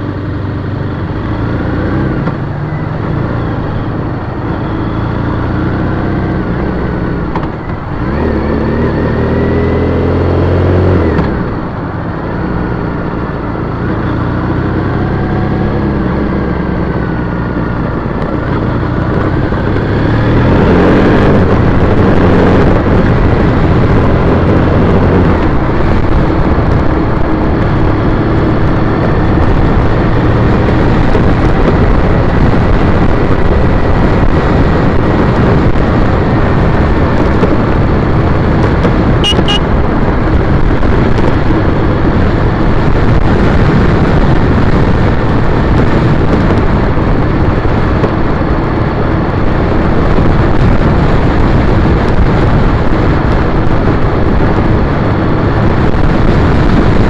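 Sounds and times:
motorcycle engine revving: 0.0 - 57.0
wind rush on microphone: 0.0 - 57.0.

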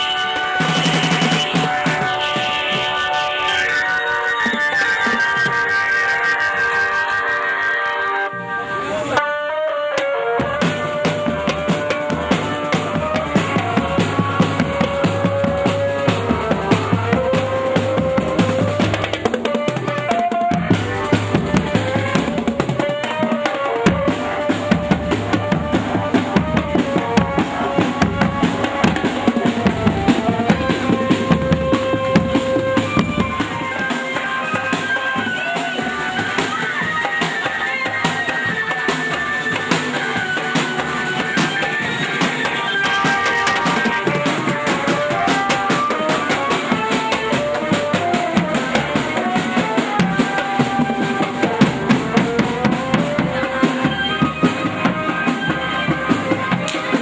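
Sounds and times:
marching drum band: 0.0 - 6.6, 8.8 - 57.0.

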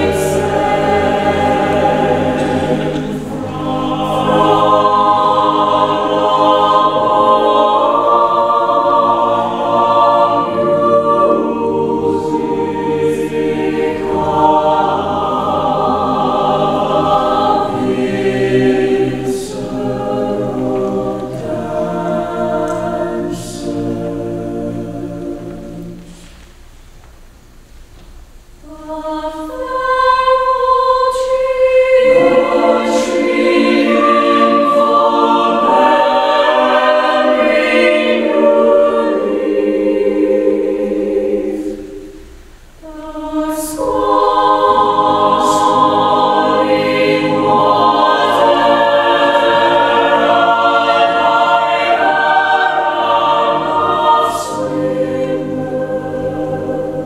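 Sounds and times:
choir singing: 0.0 - 26.4, 28.6 - 57.0.

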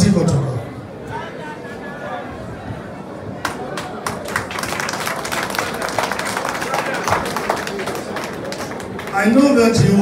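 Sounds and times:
audience applauding: 3.4 - 9.4.

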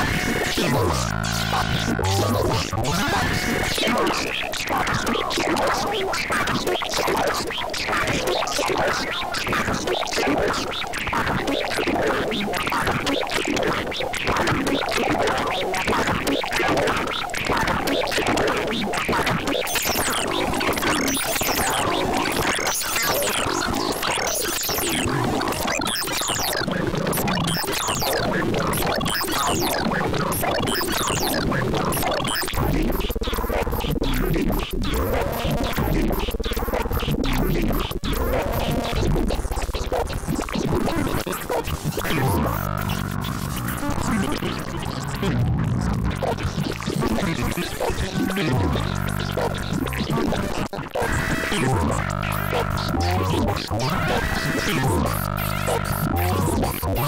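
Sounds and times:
repeating arching synth tones: 0.0 - 4.4, 33.3 - 57.0
crackling stream of rapid pulses: 0.0 - 57.0.

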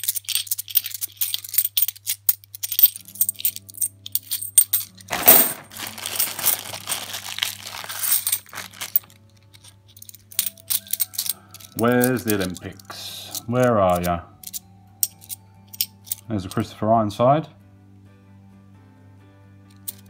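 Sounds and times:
coins clinking: 0.0 - 16.3, 19.7 - 20.0
plastic bag rustling: 5.1 - 9.3.

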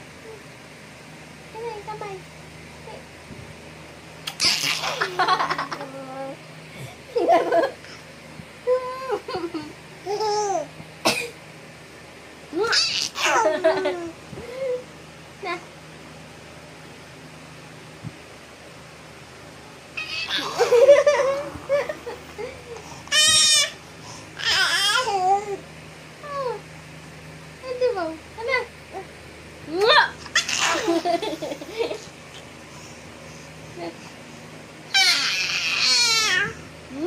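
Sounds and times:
baby laughing: 4.3 - 6.0, 12.7 - 14.1, 20.0 - 23.7, 30.3 - 32.0
baby squealing: 20.0 - 20.6, 23.1 - 23.8, 30.3 - 30.9, 34.9 - 36.6.

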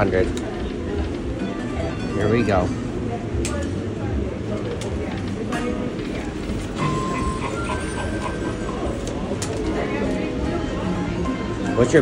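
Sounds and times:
machine noise: 5.2 - 10.0.

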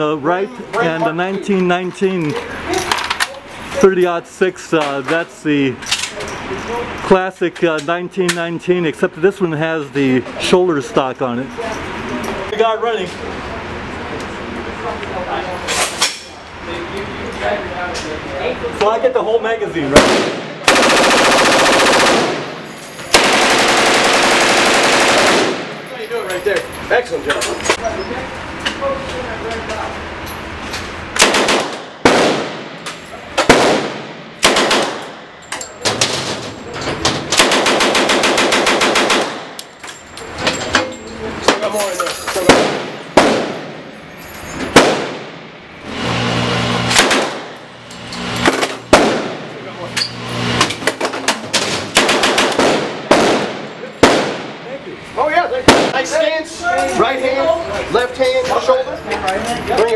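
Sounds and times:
submachine gun automatic bursts: 20.7 - 22.5, 23.1 - 25.7, 31.2 - 32.4, 33.5 - 35.0, 37.4 - 39.5.

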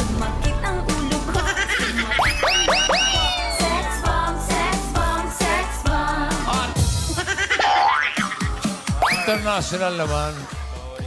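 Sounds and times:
game show music: 0.0 - 11.0.

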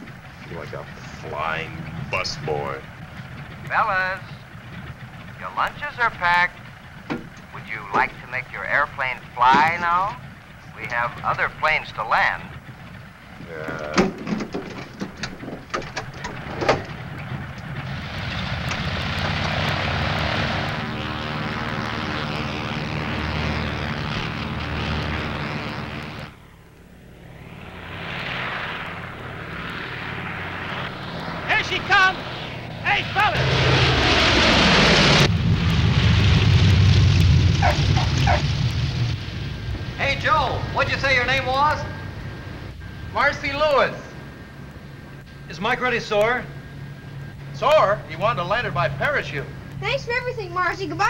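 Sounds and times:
propeller plane engines: 0.0 - 51.0.

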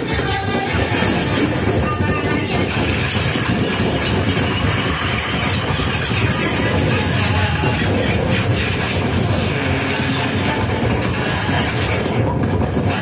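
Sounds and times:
grinding electronic noise music: 0.0 - 13.0.

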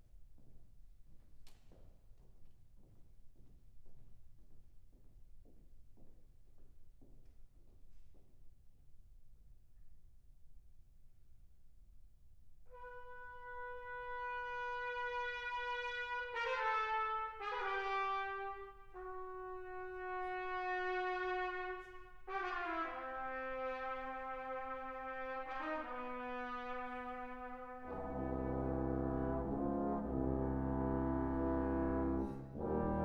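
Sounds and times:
brass ensemble playing: 12.7 - 33.0.

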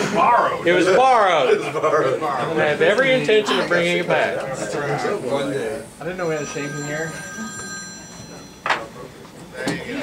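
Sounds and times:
phone ringing: 6.1 - 9.1.

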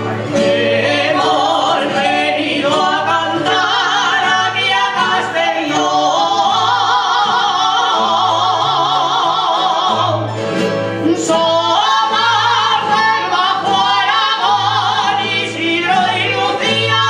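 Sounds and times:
plucked guitars and bandurrias: 0.0 - 17.0
person singing with vibrato: 0.1 - 17.0.

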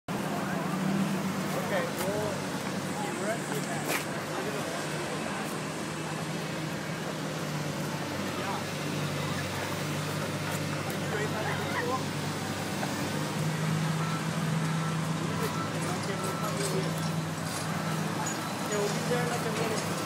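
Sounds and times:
roadside traffic hum: 0.1 - 20.0.

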